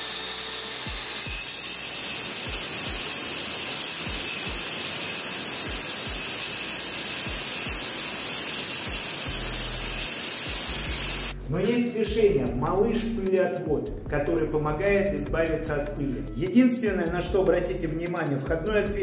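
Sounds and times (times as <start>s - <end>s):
angle grinder cutting wall: 0.0s - 11.4s
music with thumping beat: 4.1s - 4.6s, 5.7s - 6.2s, 7.3s - 8.0s, 8.9s - 9.8s, 10.5s - 19.0s.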